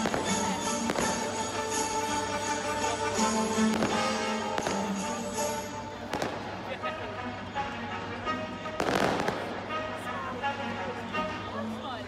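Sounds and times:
fireworks bursting and crackling: 0.0 - 1.9, 2.8 - 6.8, 8.8 - 9.7.

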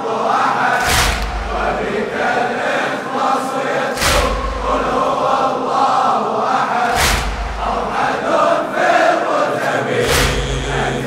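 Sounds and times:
crowd of men chanting: 0.0 - 11.0
chest-beating strikes: 6.9 - 8.0, 10.0 - 11.0.

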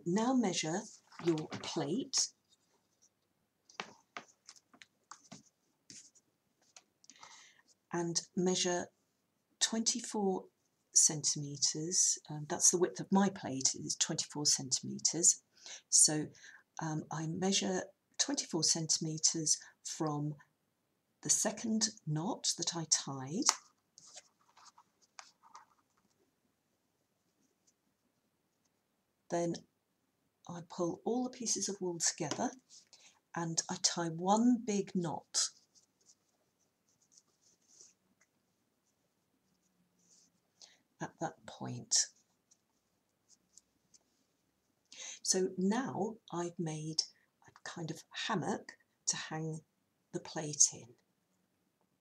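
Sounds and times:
faint rustles and scrapes on tabletop: 2.4 - 7.9, 23.5 - 26.2, 32.5 - 33.1, 35.3 - 40.8, 42.0 - 44.5.

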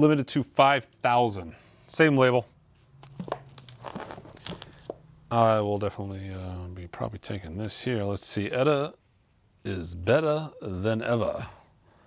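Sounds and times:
plastic-wrapped sleeves crinkling: 3.2 - 5.0.

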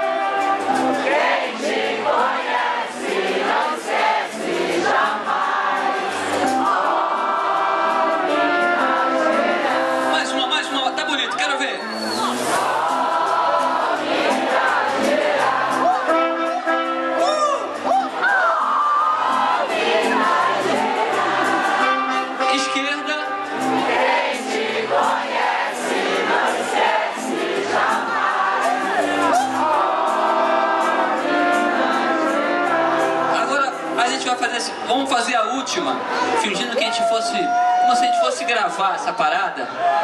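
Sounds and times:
crowd singing along: 0.0 - 34.9
live band with horns: 0.0 - 34.9.

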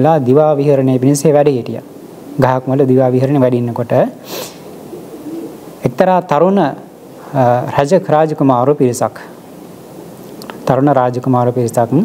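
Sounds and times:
man speaking: 0.0 - 4.2, 5.8 - 9.4, 10.6 - 12.0
man's sharp intake of breath: 4.2 - 4.7
mouth click: 10.4 - 10.6.

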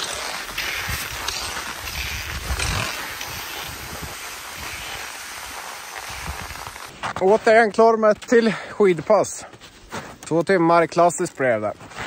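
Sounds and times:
ski pole plants: 0.0 - 12.0
skis swishing on snow: 0.0 - 12.0
wind on microphone: 0.7 - 5.1, 6.1 - 6.8.

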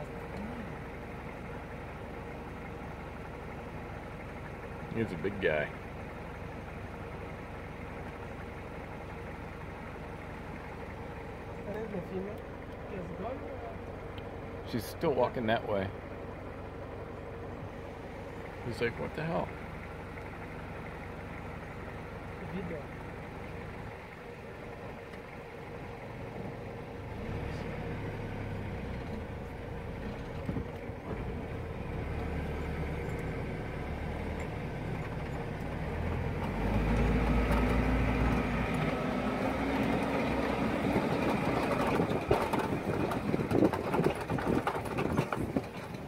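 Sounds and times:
vehicle engine running: 0.0 - 46.0
knocks and rattles: 40.8 - 46.0.

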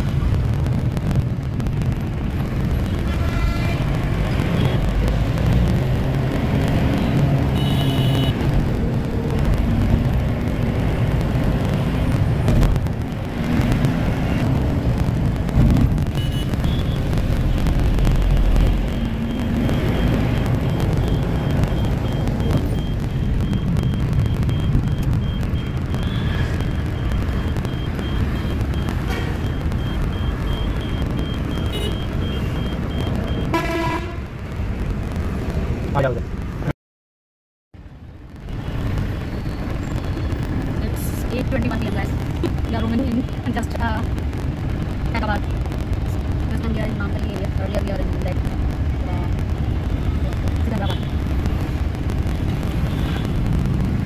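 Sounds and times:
minibus engine and road rumble: 0.0 - 36.7, 37.8 - 54.0
vehicle horns tooting: 3.0 - 3.9, 7.5 - 8.4, 31.6 - 32.6, 33.5 - 34.2.

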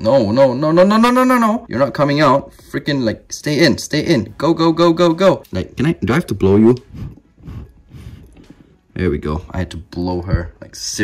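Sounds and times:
person blowing breathy puffs: 6.8 - 8.8.

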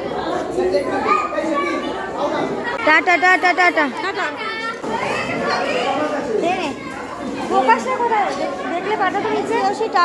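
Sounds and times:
overlapping chatter of voices: 0.0 - 10.0.

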